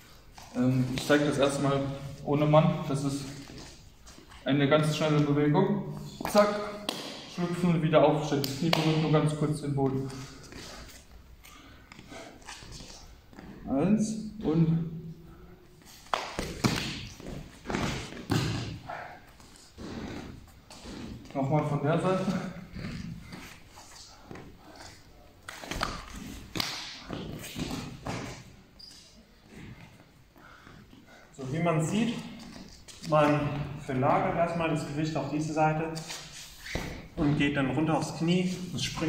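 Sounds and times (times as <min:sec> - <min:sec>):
feet shuffling on mats: 0:09.8 - 0:13.7.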